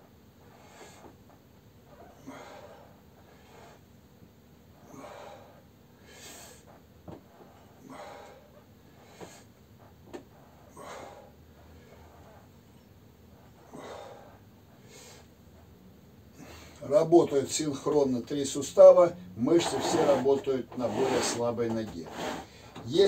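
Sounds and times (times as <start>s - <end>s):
man breathing hard: 0.5s - 1.2s, 2.2s - 3.9s, 4.8s - 6.8s, 7.4s - 9.6s, 10.5s - 12.4s, 13.4s - 15.4s, 16.3s - 16.8s.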